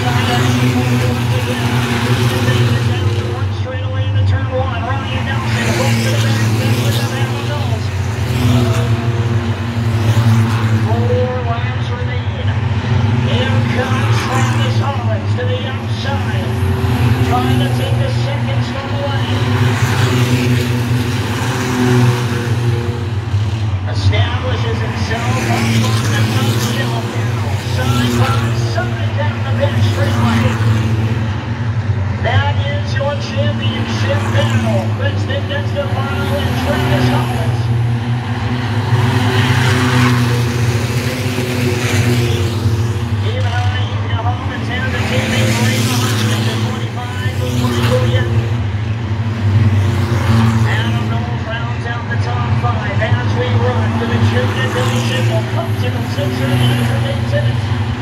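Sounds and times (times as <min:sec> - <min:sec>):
loudspeaker voice: 0:00.0 - 0:09.4, 0:10.2 - 0:21.0, 0:23.8 - 0:31.2, 0:32.1 - 0:37.8, 0:39.0 - 0:48.7, 0:50.2 - 0:57.8
cars passing by: 0:00.0 - 0:58.0
race car engines running hard: 0:00.0 - 0:58.0.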